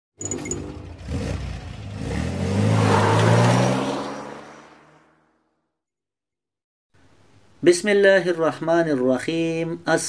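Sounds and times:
sports car engine revving: 0.8s - 5.0s.

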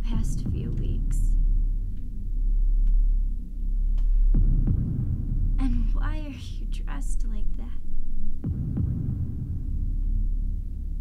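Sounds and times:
woman's voice: 0.0s - 1.4s, 5.6s - 7.8s
deep thuds: 0.0s - 6.3s, 8.3s - 11.0s
low throbbing horror score drone: 0.0s - 11.0s.

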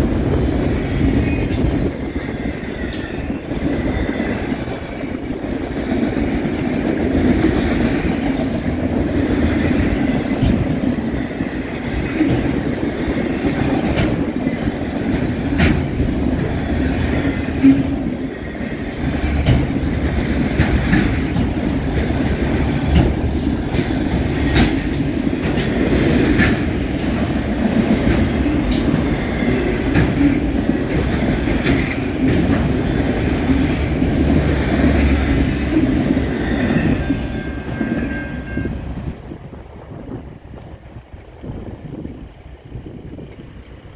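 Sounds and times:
freight train rolling past: 0.0s - 43.9s
steel wheels clicking and clanking: 0.2s - 38.4s.

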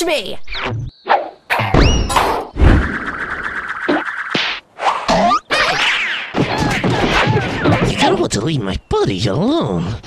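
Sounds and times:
heavy cartoon thuds: 1.5s - 2.9s.

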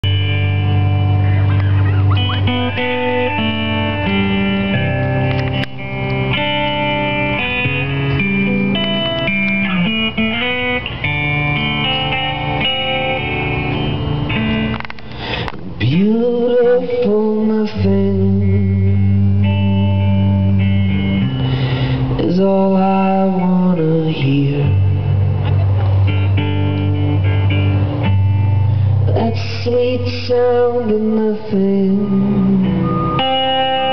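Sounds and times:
guitar playing sustained notes: 0.0s - 33.9s.

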